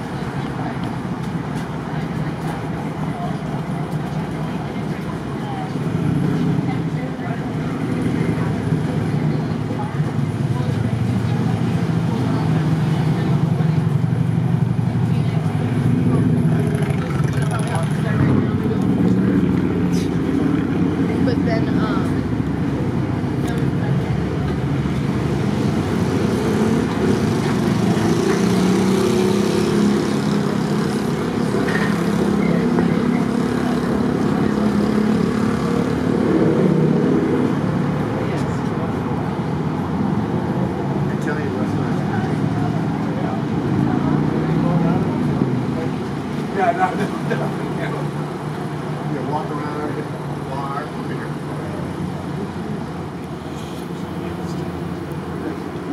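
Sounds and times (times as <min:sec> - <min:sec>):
car traffic: 0:00.0 - 0:55.9
indistinct talking: 0:00.0 - 0:55.9.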